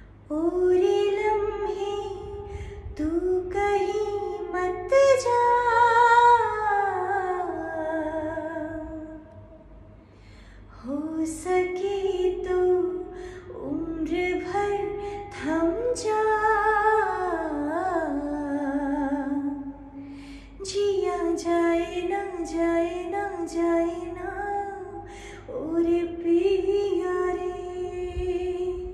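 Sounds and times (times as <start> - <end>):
woman singing unaccompanied: 0.3 - 9.3, 10.8 - 20.0, 20.6 - 28.9
woman breathing in: 2.4 - 2.9, 9.9 - 10.8, 20.0 - 20.6, 25.0 - 25.5.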